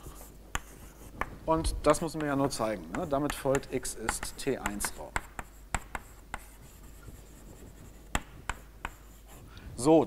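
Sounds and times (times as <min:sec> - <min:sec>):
chalk tapping on blackboard: 0:00.0 - 0:01.4, 0:02.0 - 0:09.4
faint chalk scraping: 0:00.0 - 0:10.0.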